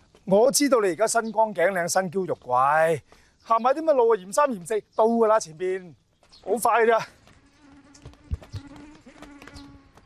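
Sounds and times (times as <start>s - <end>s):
footsteps on concrete steps: 0.0s - 3.8s, 6.0s - 10.0s
mosquitoes buzzing: 6.5s - 10.0s.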